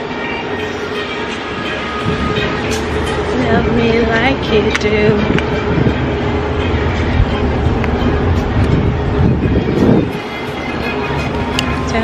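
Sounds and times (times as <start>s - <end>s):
faint pop song: 0.0s - 12.0s
wind rumbling on microphone: 1.5s - 12.0s.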